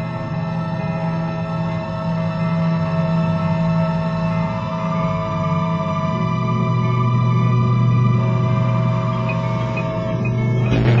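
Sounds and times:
low drone: 0.0 - 11.0.

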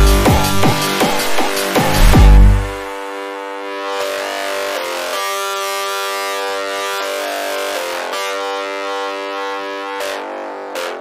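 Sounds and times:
synthesizer chords: 0.0 - 4.0.

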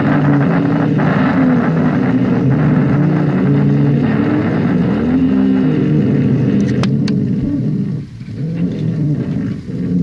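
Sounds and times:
distorted noise rock: 0.0 - 10.0.

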